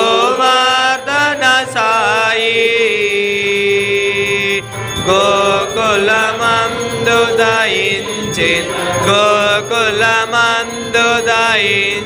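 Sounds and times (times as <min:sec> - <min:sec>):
devotional song singing: 0:00.0 - 0:12.0.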